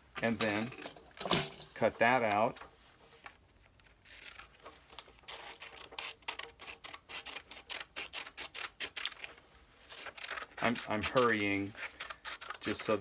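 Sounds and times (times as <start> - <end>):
scissors snipping paper: 3.8 - 13.0.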